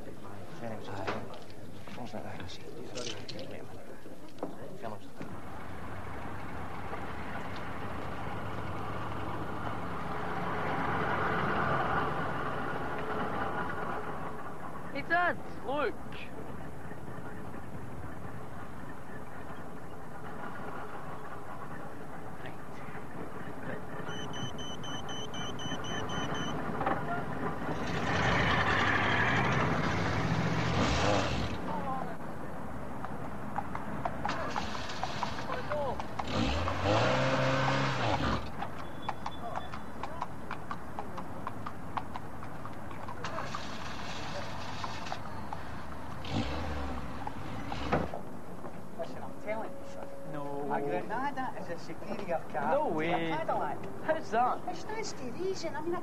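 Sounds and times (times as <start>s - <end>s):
road noise: 0.0s - 56.0s.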